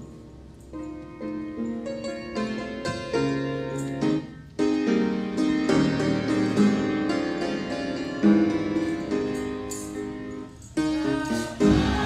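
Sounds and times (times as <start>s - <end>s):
keyboard playing hymn chords: 0.0s - 12.0s.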